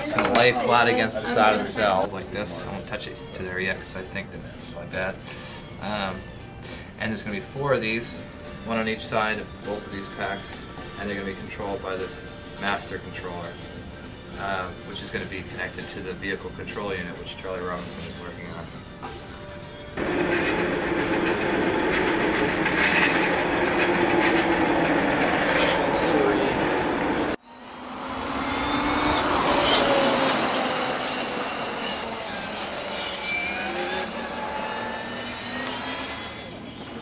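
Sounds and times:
loud noisy sound: 0:20.0 - 0:37.0
race car engine passing by: 0:20.0 - 0:37.0.

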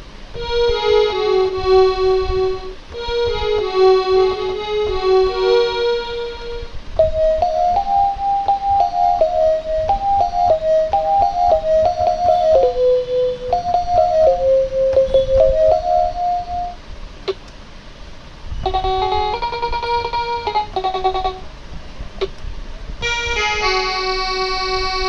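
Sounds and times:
fuller keyboard chords: 0:00.0 - 0:17.4, 0:18.6 - 0:22.4, 0:23.0 - 0:25.0
toy keyboard melody: 0:00.4 - 0:16.8, 0:18.6 - 0:21.5, 0:23.0 - 0:25.0
sharp click: 0:17.3 - 0:17.6.

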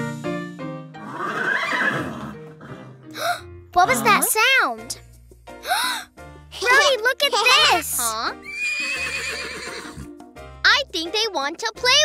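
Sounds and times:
horse whinny: 0:01.0 - 0:03.0, 0:08.4 - 0:10.1.

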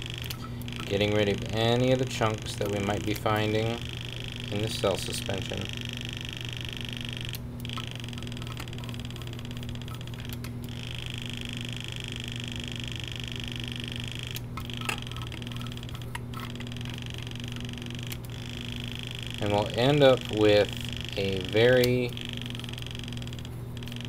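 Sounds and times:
electric pipette motor whining: 0:00.0 - 0:24.0
low steady hum: 0:00.0 - 0:24.0.

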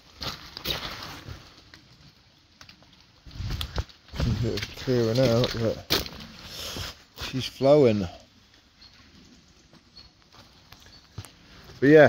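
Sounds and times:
footsteps on wet leaves: 0:00.0 - 0:07.6.

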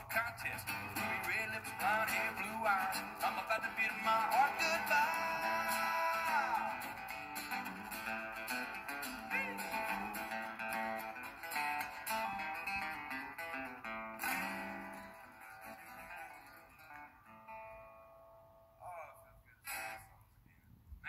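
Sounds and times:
acoustic guitars strumming: 0:00.0 - 0:18.8, 0:19.7 - 0:20.2.

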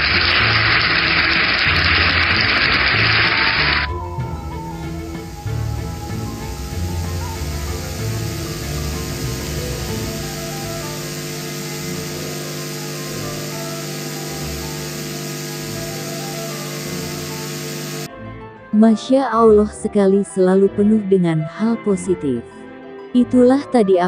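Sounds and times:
steady hiss: 0:00.0 - 0:18.1
soft sustained background music: 0:00.0 - 0:24.0.

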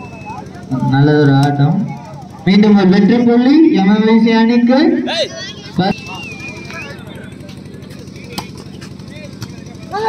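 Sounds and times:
warbling whistle blast: 0:00.0 - 0:00.6, 0:05.8 - 0:07.4
murmur of onlookers: 0:00.0 - 0:10.0.

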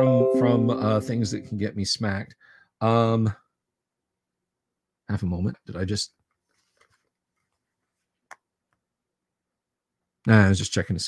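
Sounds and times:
word spoken: 0:00.0 - 0:02.2.

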